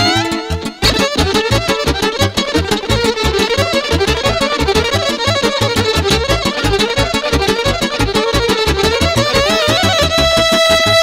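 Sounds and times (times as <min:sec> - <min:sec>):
electric violin melody: 0:00.0 - 0:11.0
live band dance music: 0:00.0 - 0:11.0.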